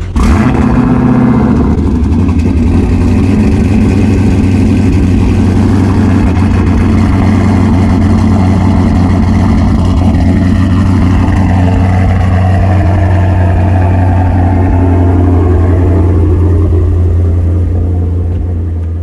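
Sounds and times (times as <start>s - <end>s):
car engine starting and idling: 0.0s - 19.0s.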